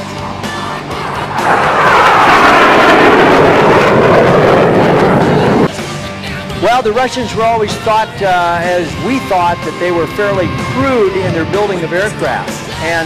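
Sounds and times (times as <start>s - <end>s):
jet engine flyby: 0.1s - 6.2s, 8.5s - 13.0s.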